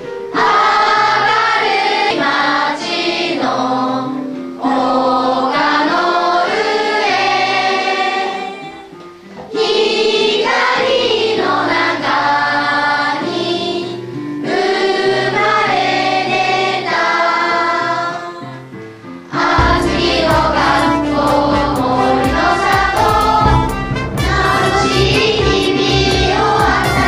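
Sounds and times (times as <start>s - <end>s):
children singing: 0.3s - 18.6s, 19.3s - 27.0s
music with bass and beat: 19.6s - 27.0s.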